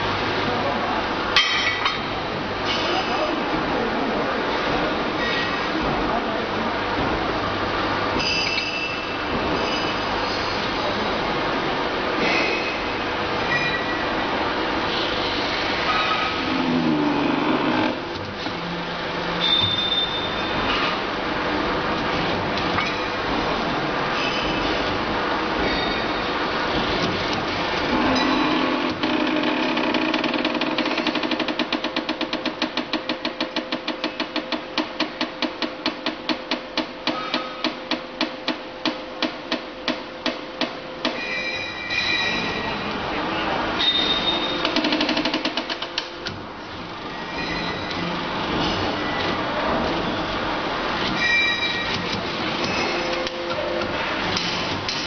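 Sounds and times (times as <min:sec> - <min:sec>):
workshop machinery running: 0:00.0 - 0:55.0.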